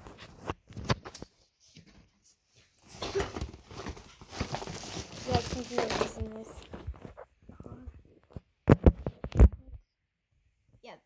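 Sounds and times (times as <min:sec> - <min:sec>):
camera being handled and knocked: 0:08.3 - 0:09.6.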